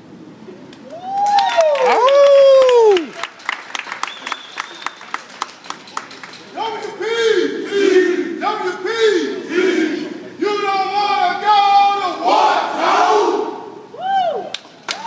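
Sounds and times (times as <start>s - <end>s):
group of voices chanting: 11.8s - 13.7s.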